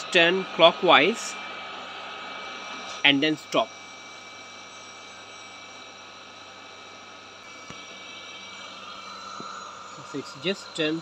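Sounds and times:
robot vacuum humming: 0:00.0 - 0:11.0.

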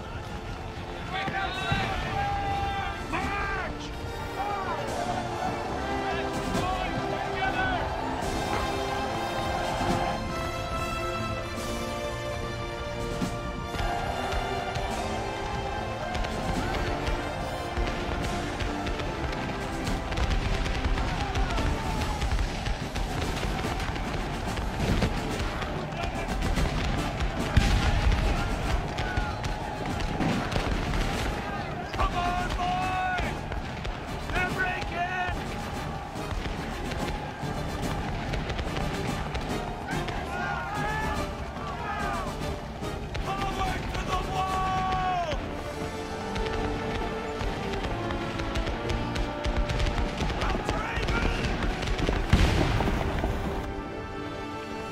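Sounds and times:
men yelling: 0:00.0 - 0:11.3, 0:13.6 - 0:52.3
film score music: 0:00.0 - 0:54.9
musket fire: 0:13.0 - 0:54.0
heavy blast: 0:13.8 - 0:42.4, 0:46.1 - 0:53.9.

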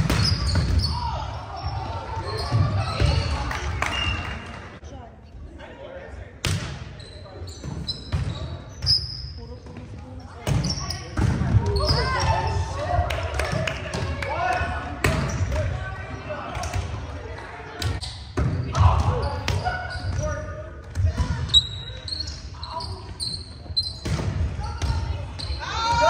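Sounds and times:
volleyball hits echoing: 0:10.4 - 0:15.8.

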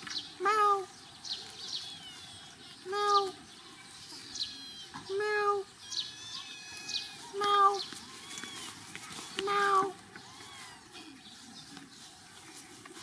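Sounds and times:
small birds chirping: 0:00.0 - 0:13.0.

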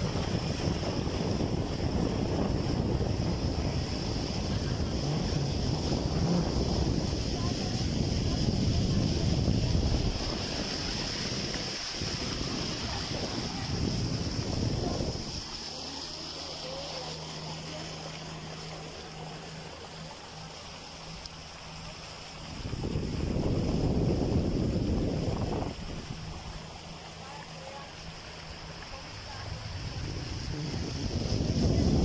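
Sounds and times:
motorboat engine humming: 0:00.0 - 0:32.0
water hissing: 0:00.0 - 0:32.0
wind buffeting microphone: 0:00.0 - 0:32.0.

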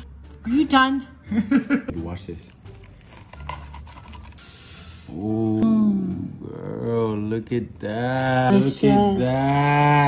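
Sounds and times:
knife crunching through tortilla: 0:02.6 - 0:04.4.

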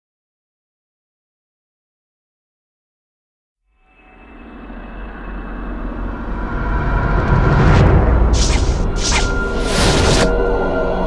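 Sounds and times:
cinematic riser whoosh: 0:05.7 - 0:10.5.

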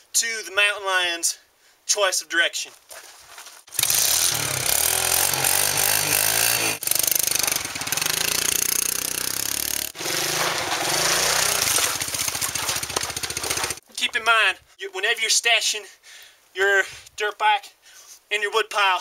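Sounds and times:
dirt bike engine revving: 0:03.7 - 0:13.8.

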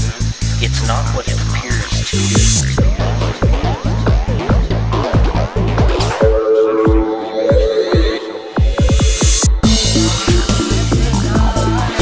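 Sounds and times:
hi-hats: 0:00.0 - 0:04.4, 0:08.9 - 0:12.0
pulsing bass beat: 0:00.0 - 0:12.0.

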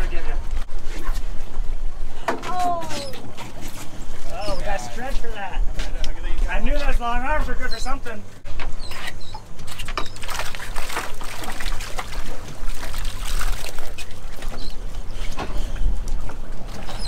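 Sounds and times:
water splashing and dripping: 0:09.6 - 0:17.0.

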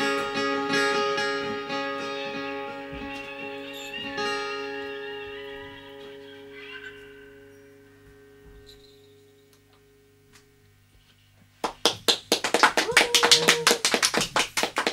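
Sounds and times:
guitar chord ringing: 0:00.0 - 0:10.8
small group applauding: 0:11.6 - 0:14.9.

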